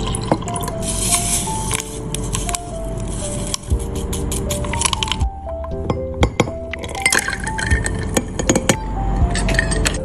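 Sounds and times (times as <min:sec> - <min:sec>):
soft background music: 0:00.0 - 0:10.0
stirrer clinking against glass: 0:05.9 - 0:10.0.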